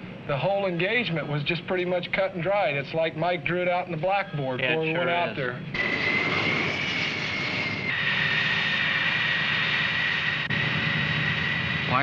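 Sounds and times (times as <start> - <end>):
jet engine turbine whine: 0.0 - 3.2, 5.6 - 12.0.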